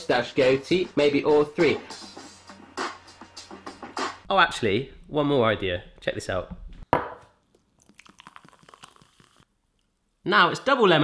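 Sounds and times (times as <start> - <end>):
glass knocking on wooden counter: 7.0 - 7.2
fizzing lemonade being poured: 7.6 - 9.5.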